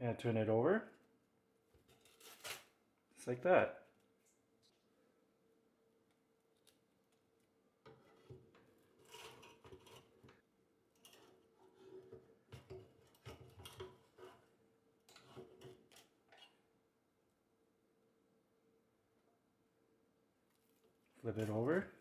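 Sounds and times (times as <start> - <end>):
spatula scraping air fryer basket: 8.0 - 10.3.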